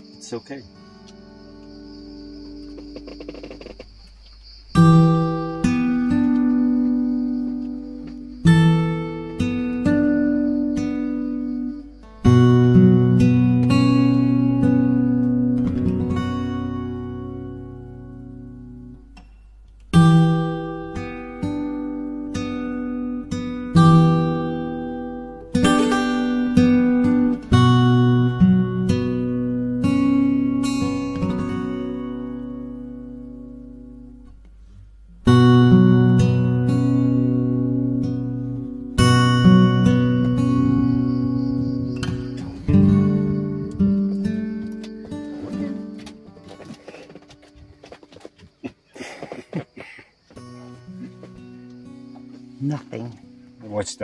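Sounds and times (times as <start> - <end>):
acoustic guitar strumming: 0.0 - 54.0.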